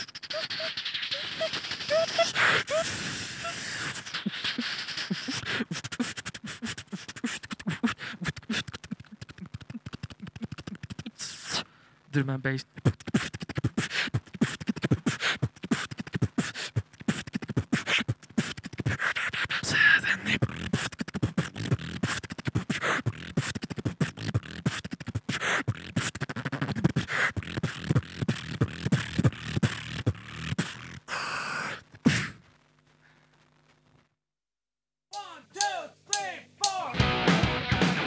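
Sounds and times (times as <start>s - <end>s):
person beatboxing: 0.0s - 11.7s, 12.7s - 32.4s.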